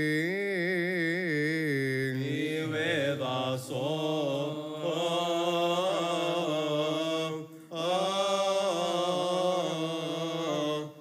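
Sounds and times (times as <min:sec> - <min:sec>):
man singing chant: 0:00.0 - 0:11.0.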